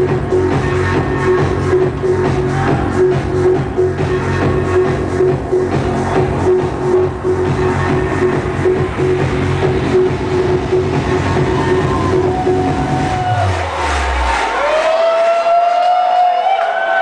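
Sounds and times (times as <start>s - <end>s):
trance music through sound system: 0.0s - 17.0s.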